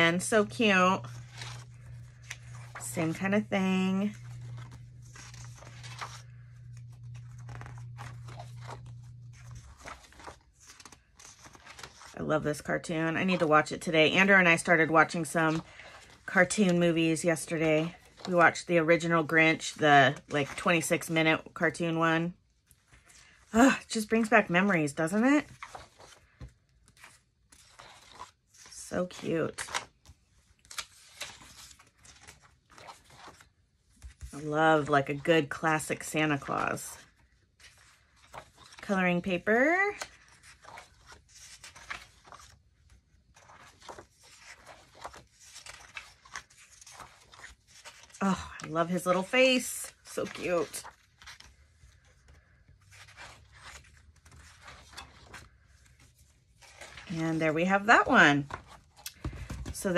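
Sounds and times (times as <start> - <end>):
book pages turning: 0.0 - 21.9, 22.6 - 59.9.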